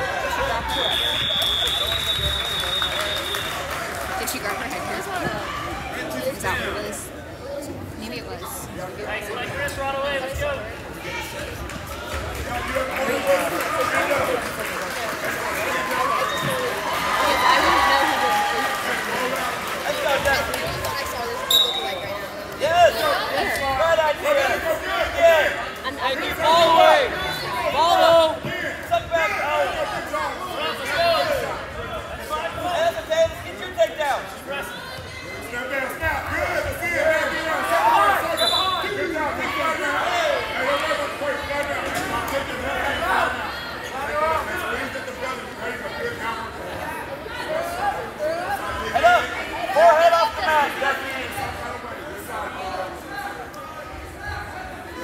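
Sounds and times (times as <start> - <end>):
chatter of voices: 3.9 - 55.0.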